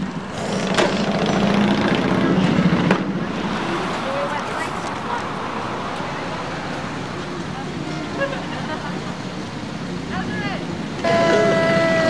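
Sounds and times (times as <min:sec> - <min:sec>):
car passing: 0:00.0 - 0:11.6
faint voices: 0:02.3 - 0:12.0.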